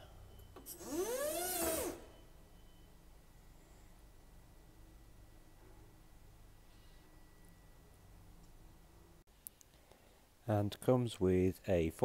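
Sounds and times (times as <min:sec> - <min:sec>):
electric forklift motor whining: 0:00.7 - 0:02.1.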